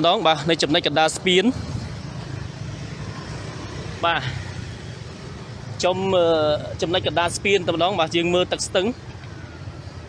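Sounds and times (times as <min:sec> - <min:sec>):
motorbike traffic hum: 0:00.0 - 0:10.0.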